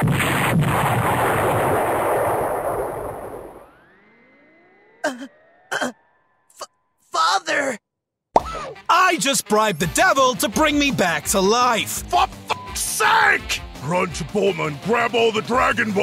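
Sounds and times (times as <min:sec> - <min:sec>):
cartoon explosion rumble: 0:00.0 - 0:04.0
faint rising tone: 0:03.3 - 0:06.5.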